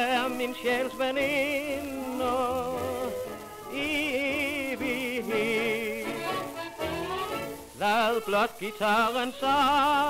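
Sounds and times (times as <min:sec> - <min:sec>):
record surface hiss: 0:00.0 - 0:10.0
tenor singing with vibrato: 0:00.0 - 0:10.0.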